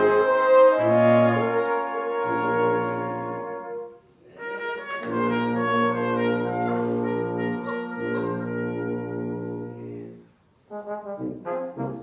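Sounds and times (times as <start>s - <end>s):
brass ensemble playing folk tune: 0.0s - 12.0s.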